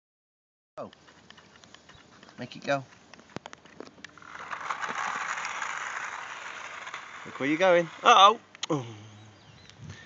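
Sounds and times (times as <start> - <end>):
toy car motor whirring: 4.0 - 8.4.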